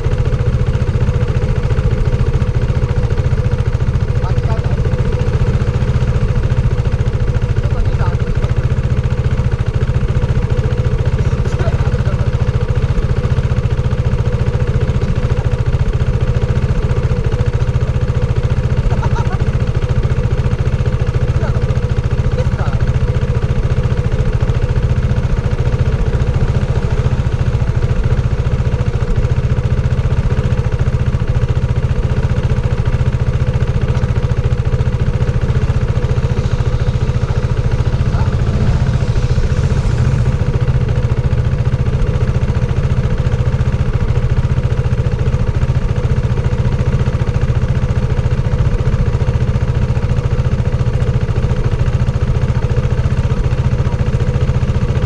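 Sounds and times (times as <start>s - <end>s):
motorcycle engine idling: 0.0s - 55.0s
motorcycle passing: 24.5s - 30.5s, 32.9s - 43.6s.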